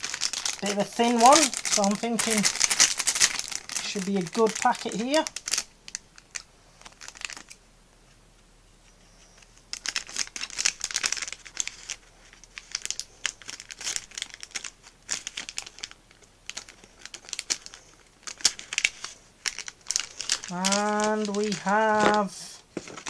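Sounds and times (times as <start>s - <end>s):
packet tearing: 0.0s - 7.6s, 9.7s - 23.0s
plastic packet crinkling: 0.0s - 7.6s, 9.4s - 23.0s.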